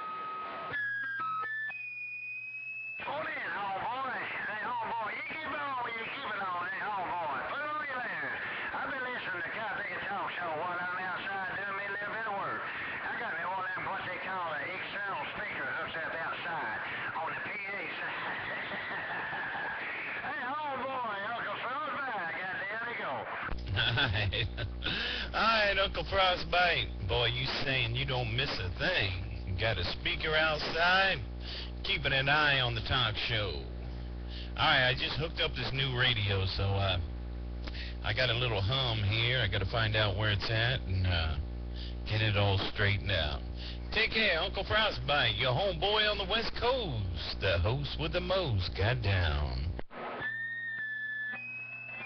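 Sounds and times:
low steady hum: 0:23.5 - 0:49.9
warbling voice over radio: 0:25.4 - 0:31.3.

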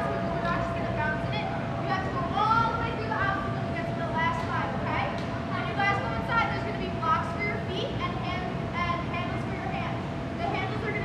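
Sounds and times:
steady thin hum: 0:00.0 - 0:11.0.

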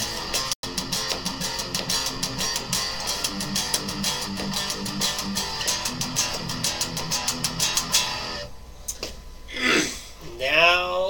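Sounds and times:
electric guitar notes ringing: 0:00.0 - 0:08.5.

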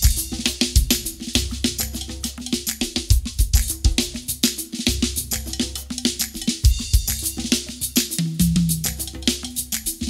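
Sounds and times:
fast drum kit playing: 0:00.0 - 0:10.0.

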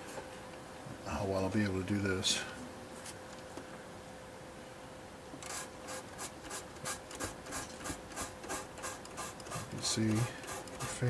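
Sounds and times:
fingertip rubbing model surface: 0:05.5 - 0:11.0.

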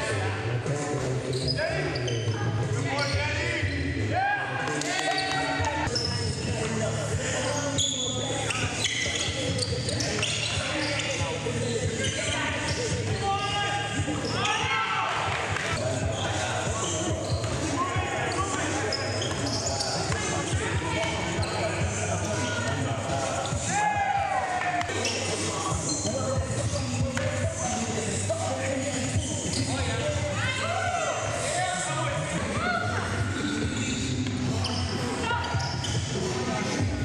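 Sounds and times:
indistinct voices: 0:00.0 - 0:37.0
sneakers squeaking on hardwood: 0:07.5 - 0:14.8, 0:15.4 - 0:23.7, 0:24.8 - 0:27.6, 0:29.1 - 0:30.1, 0:32.9 - 0:36.3.

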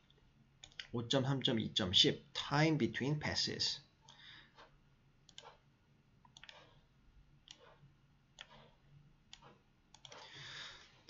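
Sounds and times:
computer mouse clicks: 0:00.1 - 0:01.0, 0:04.0 - 0:05.6, 0:06.2 - 0:06.8, 0:07.4 - 0:07.8, 0:08.4 - 0:10.2
person speaking: 0:00.8 - 0:03.9
soft breath: 0:04.1 - 0:04.8, 0:10.1 - 0:11.0.

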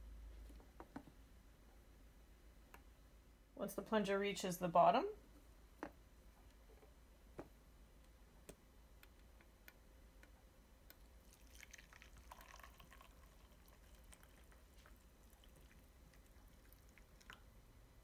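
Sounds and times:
coffee pouring into a glass mug: 0:11.2 - 0:17.5.

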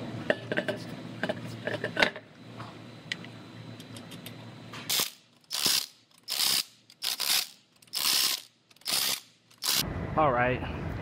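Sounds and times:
power wrench rattling: 0:04.9 - 0:09.8.

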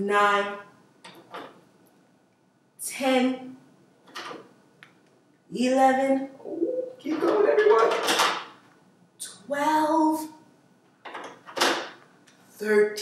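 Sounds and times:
woman speaking: 0:00.0 - 0:00.7, 0:02.8 - 0:03.6, 0:05.5 - 0:07.9, 0:09.2 - 0:10.4, 0:12.6 - 0:13.0.

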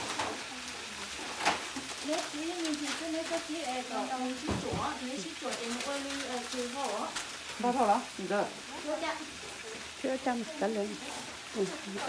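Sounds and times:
food sizzling in a pan: 0:00.0 - 0:12.0
voices talking: 0:00.3 - 0:12.0.

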